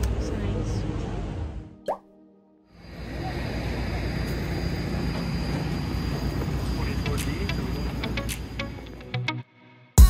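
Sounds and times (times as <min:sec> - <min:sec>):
steady outdoor ambience: 0:00.0 - 0:01.8, 0:02.7 - 0:09.5
street ambience: 0:00.0 - 0:02.0, 0:02.7 - 0:09.6.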